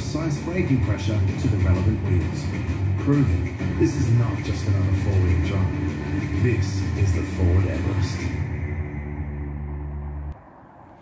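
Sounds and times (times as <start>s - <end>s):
held low chord through speakers: 0.0s - 10.4s.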